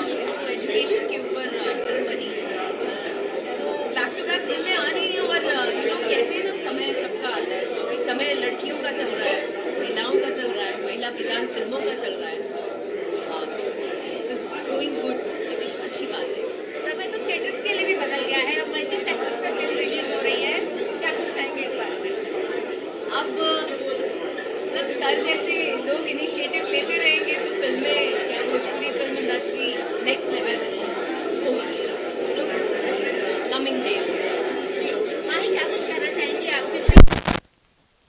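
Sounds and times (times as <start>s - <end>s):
crowd chatter: 0.0s - 37.2s
people talking over one another: 0.0s - 37.4s.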